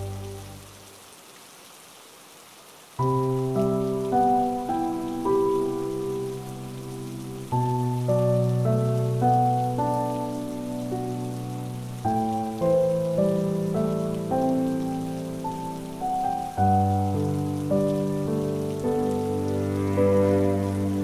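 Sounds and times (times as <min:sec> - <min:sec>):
soft cello and piano music: 0:00.0 - 0:00.8, 0:03.0 - 0:21.0
rain patter: 0:00.0 - 0:21.0.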